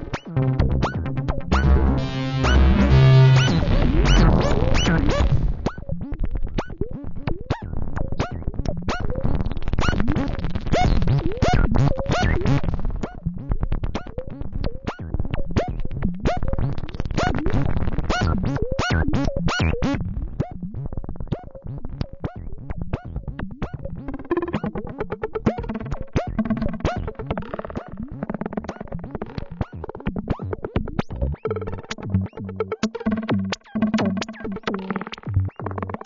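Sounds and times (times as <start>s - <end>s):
low layered synth tone: 0.0s - 7.4s, 30.4s - 36.0s
rapid synth blips: 0.0s - 8.4s, 30.6s - 36.0s.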